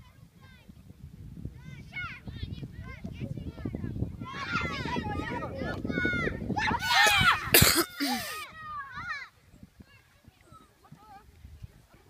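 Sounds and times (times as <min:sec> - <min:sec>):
children shouting: 0:04.3 - 0:09.3.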